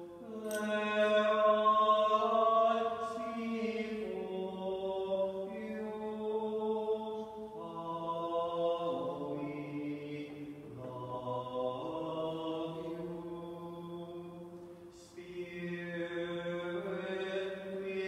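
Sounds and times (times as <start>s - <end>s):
chant-like sacred choir: 0.0s - 18.0s.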